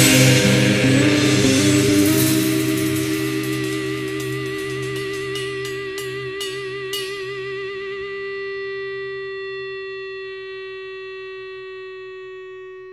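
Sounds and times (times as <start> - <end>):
sharp picked guitar accents: 0.0 - 8.5
guitar sustained note with vibrato: 0.0 - 12.9.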